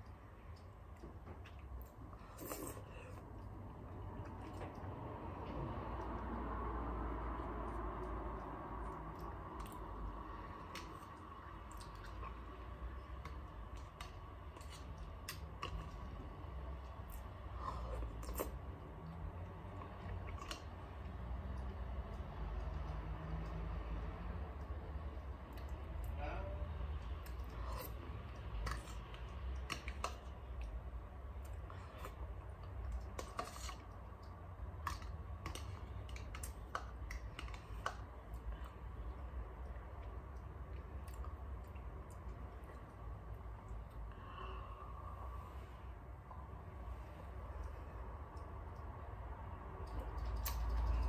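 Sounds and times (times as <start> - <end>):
low steady hum: 0.0 - 51.0
wet chewing: 7.2 - 23.6, 27.0 - 30.8.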